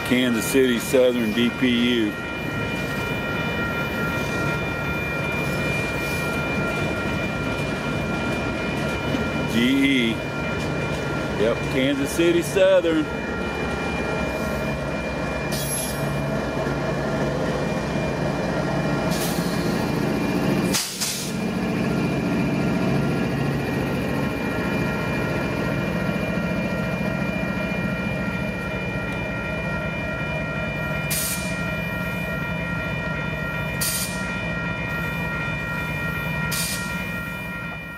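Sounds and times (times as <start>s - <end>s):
diesel locomotive engine: 0.0s - 37.9s
freight train wheels rumbling: 0.0s - 37.9s
high-pitched squeal: 15.4s - 16.3s.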